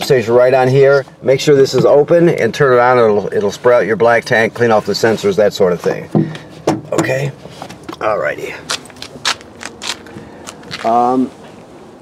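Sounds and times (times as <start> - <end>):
scuffs and clicks: 8.6 - 11.7.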